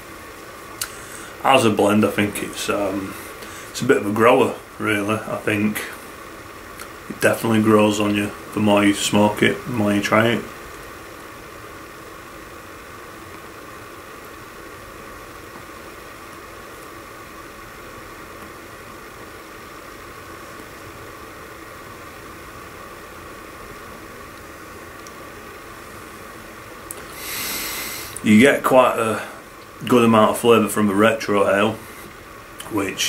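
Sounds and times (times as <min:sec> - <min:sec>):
steady low hiss: 0:00.0 - 0:33.0
breathy exhale: 0:00.8 - 0:01.4, 0:03.1 - 0:03.8, 0:27.0 - 0:28.2.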